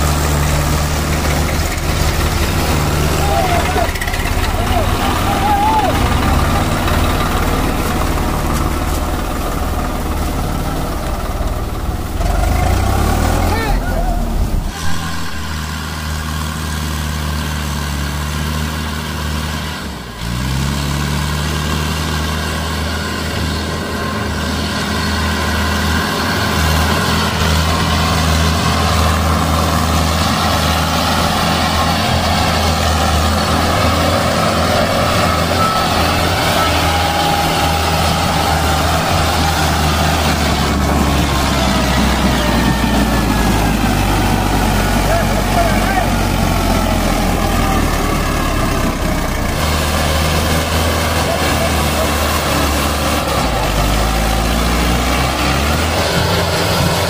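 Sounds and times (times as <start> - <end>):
diesel tractor engines under load: 0.0 - 57.0.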